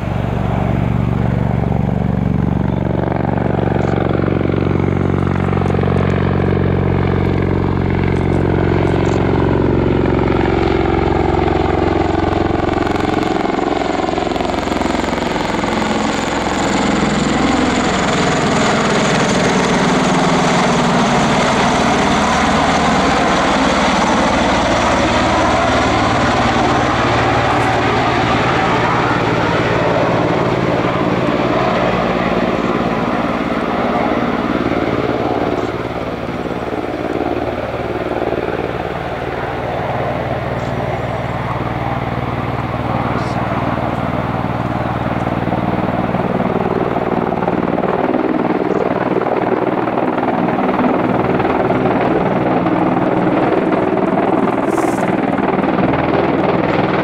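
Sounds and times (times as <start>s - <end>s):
tiltrotor aircraft rotors and engines: 0.0s - 57.0s.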